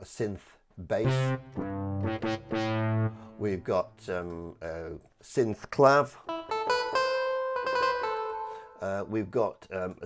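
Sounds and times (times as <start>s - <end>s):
synth clavinet notes: 1.0s - 3.6s.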